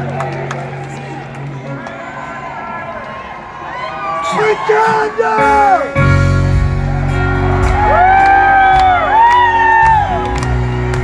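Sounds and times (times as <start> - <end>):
piano: 1.6 - 11.0
live band playing: 4.8 - 11.0
audience whooping: 6.7 - 11.0.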